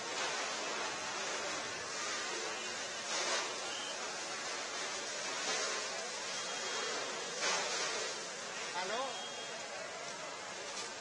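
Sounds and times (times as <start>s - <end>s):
fire hoses spraying water: 0.0s - 11.0s.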